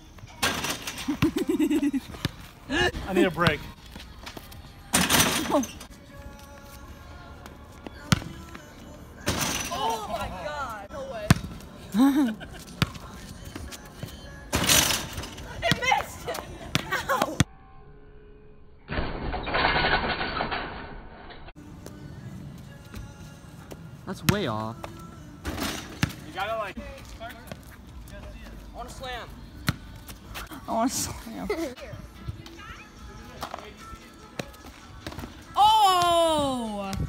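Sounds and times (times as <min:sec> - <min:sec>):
basketball hitting rim: 0:09.2 - 0:09.8, 0:25.4 - 0:26.3
people shouting: 0:35.6 - 0:36.8.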